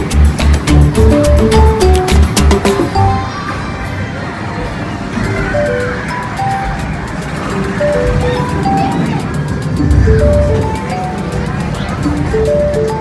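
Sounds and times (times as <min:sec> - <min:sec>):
busy game room din: 0:00.0 - 0:13.0
arcade game beeping melodies: 0:00.7 - 0:03.7, 0:05.2 - 0:13.0.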